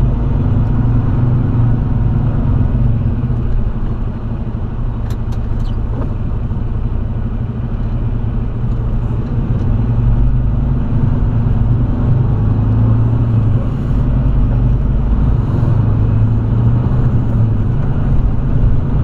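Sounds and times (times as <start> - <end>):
truck diesel engine rumble: 0.0 - 19.0.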